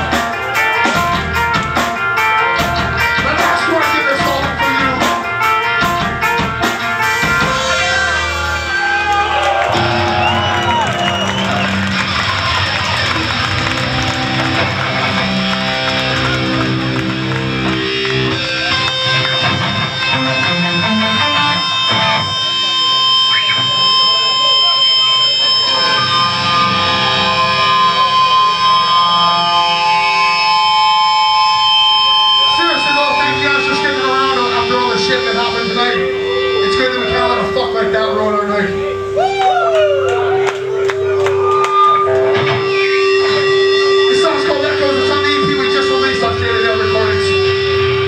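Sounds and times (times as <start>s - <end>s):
high held guitar bending notes: 0.0s - 48.0s
metal band playing live: 0.0s - 48.0s.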